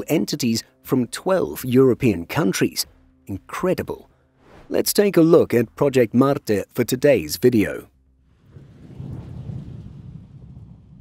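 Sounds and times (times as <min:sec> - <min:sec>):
deep thunder-like rumble: 0:08.2 - 0:11.0.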